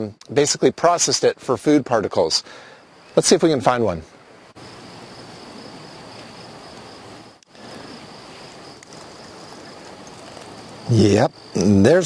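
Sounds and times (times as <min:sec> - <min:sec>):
background hiss: 0:00.0 - 0:12.0
insects buzzing: 0:00.0 - 0:12.0.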